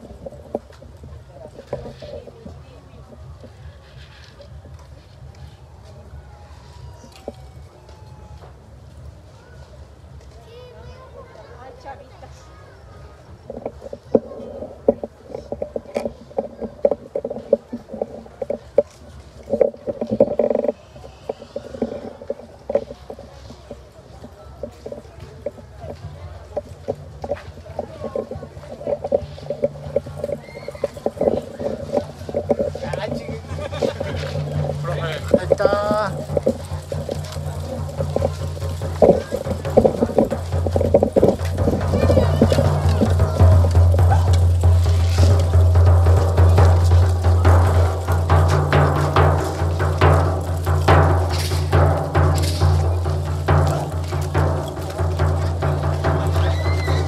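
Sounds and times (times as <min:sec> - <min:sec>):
drum beaten in quick rhythm: 0:24.6 - 0:57.0
sharp drum crack: 0:26.0 - 0:57.0
dancers stamping: 0:26.7 - 0:57.0.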